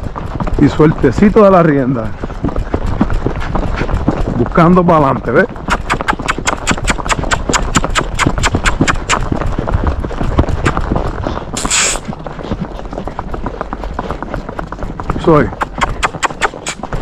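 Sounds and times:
horse hoofbeats on asphalt: 0:00.0 - 0:17.0
short hiss: 0:11.6 - 0:12.0.

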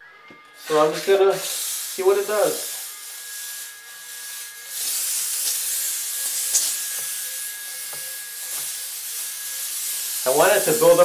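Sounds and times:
steam hissing: 0:00.6 - 0:11.0.

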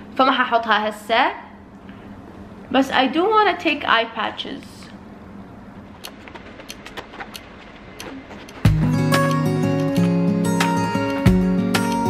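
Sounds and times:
low room hum: 0:00.0 - 0:09.5.

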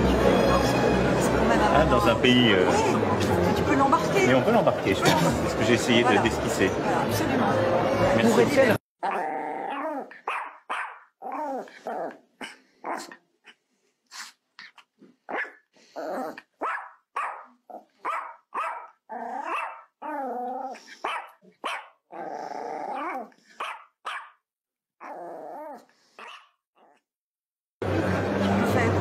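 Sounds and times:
dog barking and growling: 0:09.0 - 0:13.6, 0:14.2 - 0:24.4, 0:25.0 - 0:27.1.

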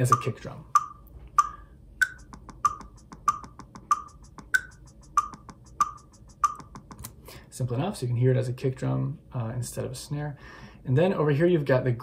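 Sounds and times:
kick drum rhythm: 0:00.0 - 0:07.0
steady metronome click: 0:00.0 - 0:07.2.

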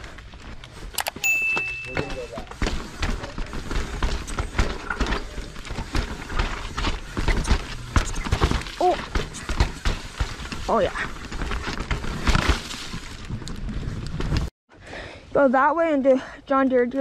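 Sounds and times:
short electronic chime: 0:01.2 - 0:02.3
mountain bike rattling over rocks: 0:01.3 - 0:14.5.

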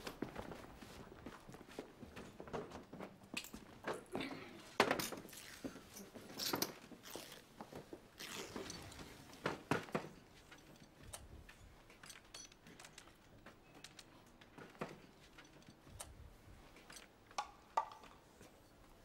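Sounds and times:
wooden chairs scraping and knocking: 0:00.2 - 0:11.1.

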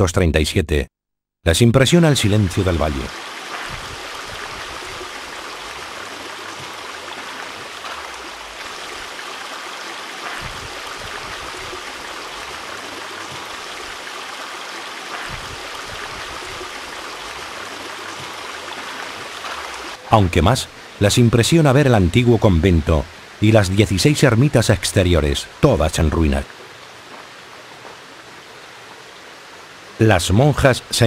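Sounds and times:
stream running water: 0:02.0 - 0:31.0.

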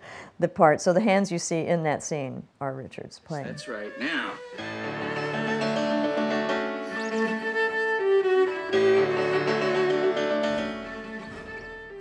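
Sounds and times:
cello bowed notes: 0:03.3 - 0:12.0
piano playing: 0:03.7 - 0:12.0.

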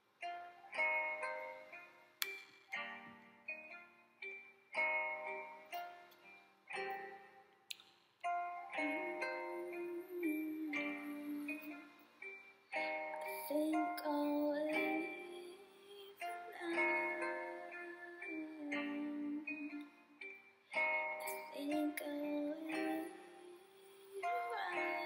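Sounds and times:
song with plucked-string chords: 0:00.0 - 0:25.0.

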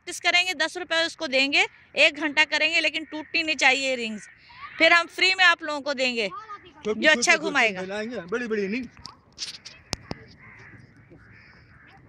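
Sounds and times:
distant voices and calls: 0:00.0 - 0:12.0.

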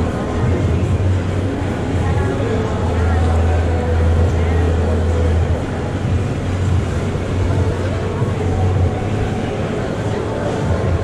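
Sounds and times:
people talking: 0:00.0 - 0:11.0
steady low hum: 0:00.0 - 0:11.0.

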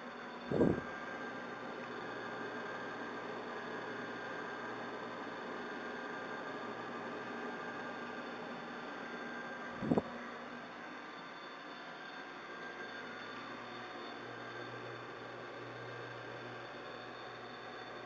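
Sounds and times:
stove blowers whirring: 0:00.0 - 0:18.0
low hum: 0:00.4 - 0:01.0, 0:09.8 - 0:10.2.

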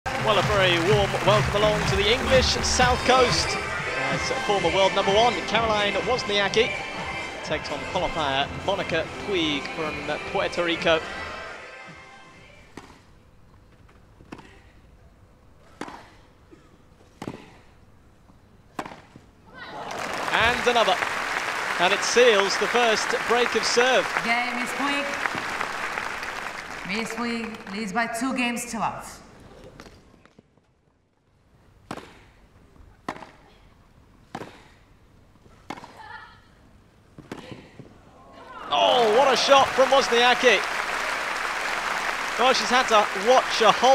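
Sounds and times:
crowd applause: 0:00.0 - 0:03.8, 0:19.7 - 0:27.8, 0:38.6 - 0:43.9
tennis ball hit by rackets: 0:15.8 - 0:16.1, 0:18.7 - 0:19.1, 0:31.8 - 0:32.3, 0:33.0 - 0:33.4, 0:34.3 - 0:34.7, 0:35.6 - 0:36.0.

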